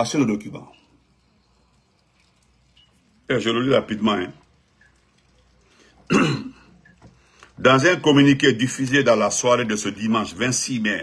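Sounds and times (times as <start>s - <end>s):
man clearing his throat: 6.1s - 6.7s.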